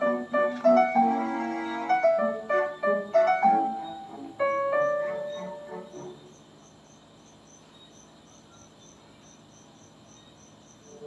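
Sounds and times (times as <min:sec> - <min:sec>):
piano notes: 0:00.0 - 0:06.5
cricket chirping: 0:00.0 - 0:11.0.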